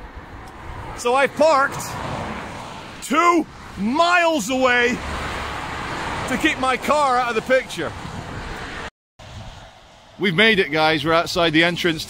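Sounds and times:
busy road traffic: 0.0 - 12.0.

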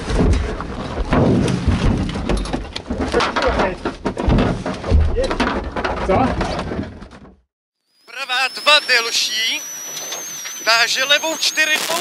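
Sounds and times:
car crashing and rolling: 0.0 - 7.4.

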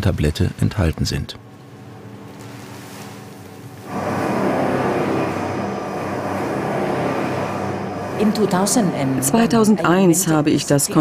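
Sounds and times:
mixing machine humming: 1.6 - 11.0.

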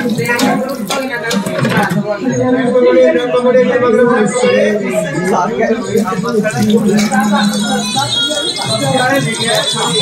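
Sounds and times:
indistinct voices: 0.0 - 10.0
steel utensils clinking: 6.4 - 10.0.

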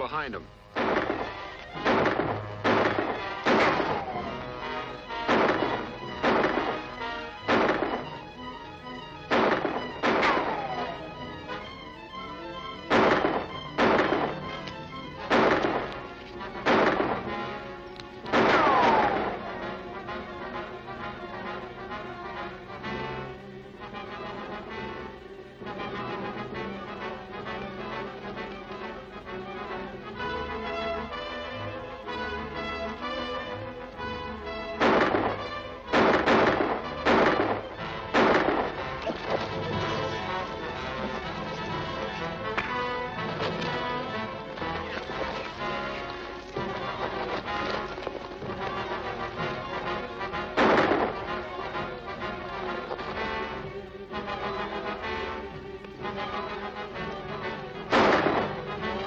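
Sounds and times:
dramatic orchestral music: 0.0 - 59.0
gunshots: 0.7 - 11.9, 12.6 - 20.8, 34.6 - 53.6, 57.8 - 59.0
ricochet whine: 0.7 - 20.9.

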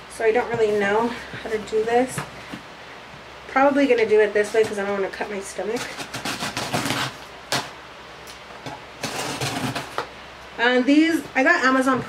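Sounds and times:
scissors rasping through tape: 5.8 - 7.7, 9.0 - 10.0.

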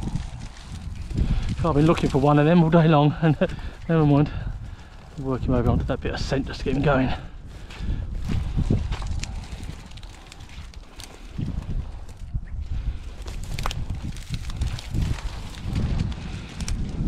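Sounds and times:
footsteps rustling through dry weeds: 0.0 - 17.0.

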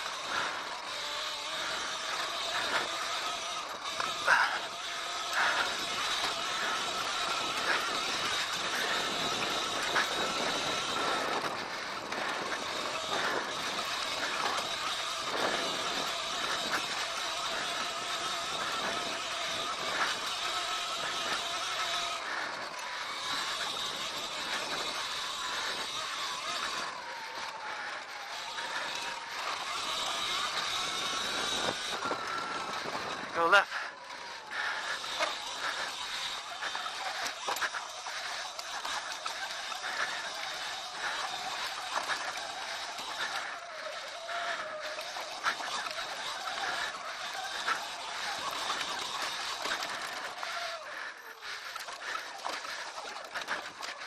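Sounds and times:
bike rattling: 0.0 - 54.0
electric motor whine: 0.0 - 54.0.

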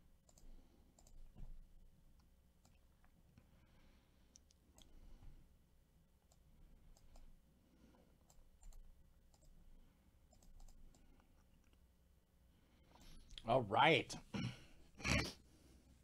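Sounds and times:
faint irregular clicks: 0.2 - 3.5, 4.2 - 5.3, 6.2 - 7.4, 8.1 - 9.7, 10.3 - 11.9.

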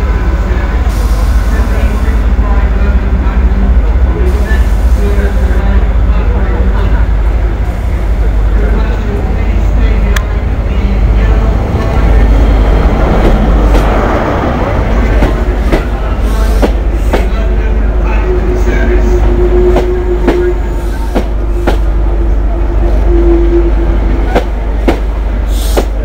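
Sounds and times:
train passing rumble: 0.0 - 26.0.

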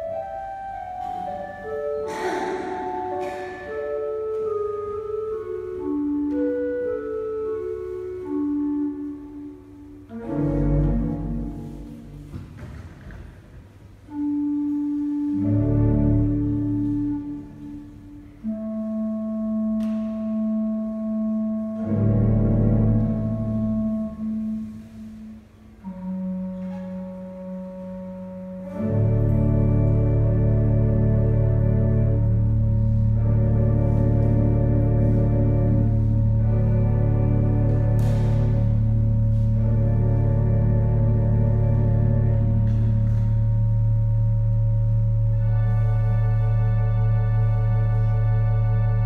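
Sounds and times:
organ sustained note: 14.1 - 49.0.

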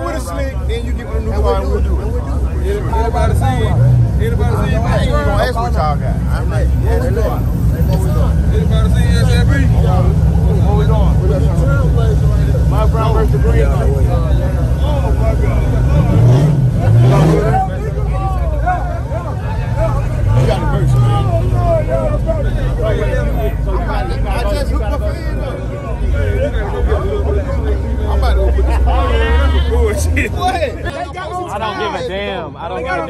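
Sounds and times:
car engine rumbling and revving: 0.0 - 30.9
crowd chatter: 0.0 - 33.0.

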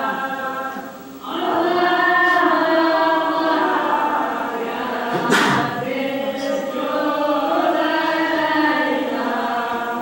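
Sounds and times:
group of voices singing: 0.0 - 10.0.

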